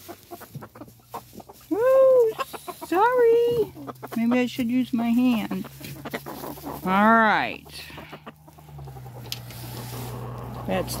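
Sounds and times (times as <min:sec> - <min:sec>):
chickens murmuring softly: 0:00.0 - 0:11.0.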